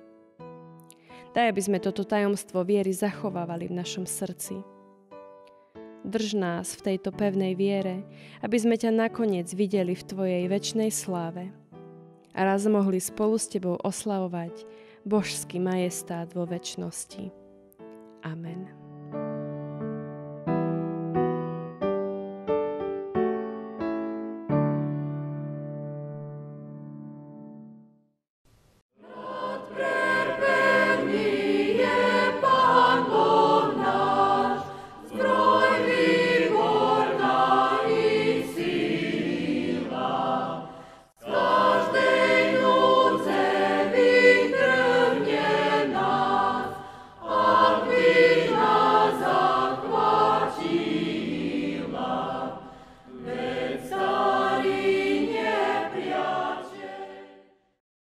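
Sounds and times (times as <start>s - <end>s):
choir singing: 29.0s - 57.6s.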